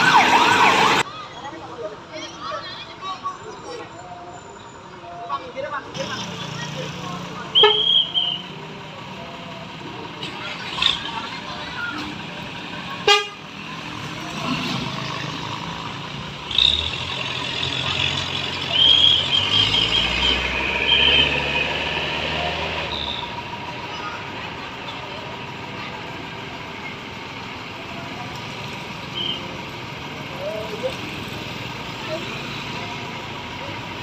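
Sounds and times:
diesel truck engine pulling away: 5.8 - 34.0.

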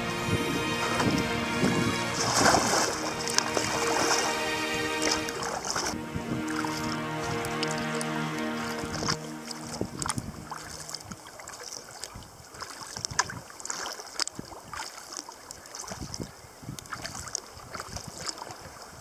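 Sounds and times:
background music: 0.0 - 11.2
paddle strokes: 0.0 - 16.1
water lapping against kayak hull: 10.0 - 18.9.

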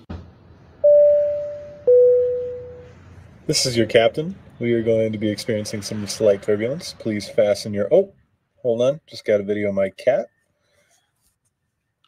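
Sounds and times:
two-note cabin chime: 0.8 - 2.9.

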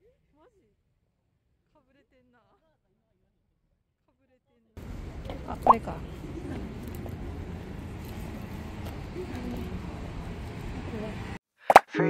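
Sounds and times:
faint voices of passers-by: 4.8 - 11.4
street rumble: 4.8 - 11.4.

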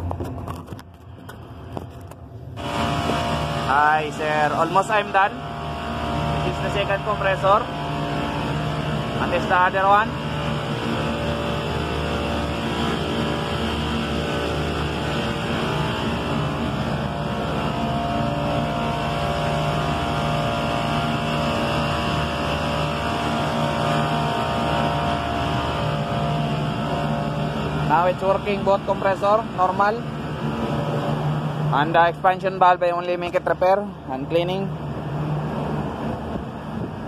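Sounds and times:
refrigeration compressors humming: 0.0 - 37.0.

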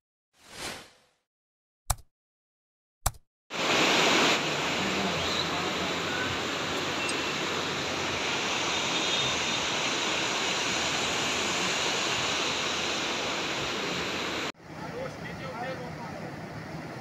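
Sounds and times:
river rushing through rapids: 3.6 - 17.0.

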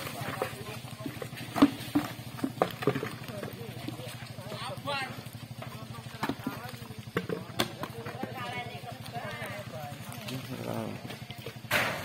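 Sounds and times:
buckets knocking and clattering: 0.0 - 12.0.

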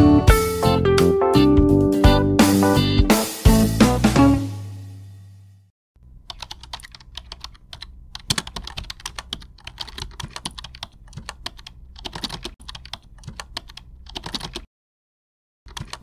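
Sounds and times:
keyboard typing clicks: 6.2 - 14.7, 15.7 - 16.0.

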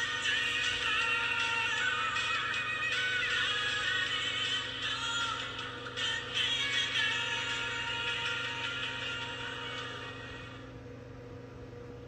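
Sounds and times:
music with singing from television: 0.0 - 10.8
low electrical hum: 0.0 - 12.0.

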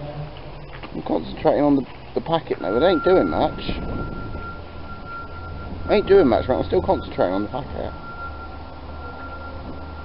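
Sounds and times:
steady high tone: 2.4 - 10.0
low rumble: 2.6 - 10.0.

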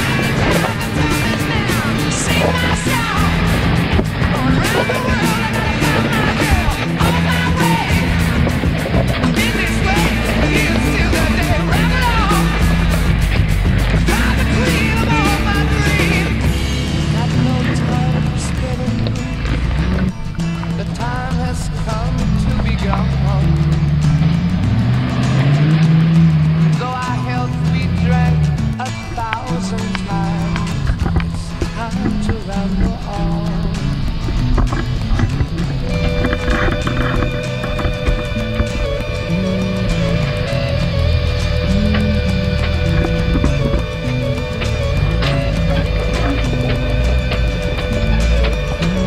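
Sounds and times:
engine revving: 0.0 - 49.0
music with fast steady beat: 0.0 - 49.0.

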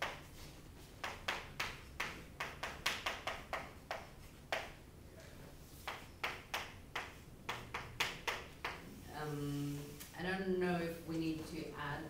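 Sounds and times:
chalk tapping on chalkboard: 0.0 - 4.8, 5.8 - 9.0.

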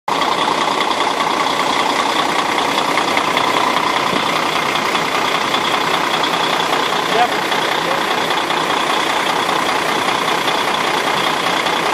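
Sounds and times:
diesel truck engine idling: 0.1 - 11.9.

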